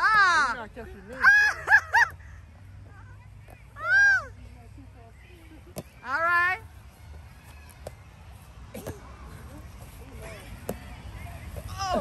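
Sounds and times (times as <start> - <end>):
people crying out: 11.7 - 12.0.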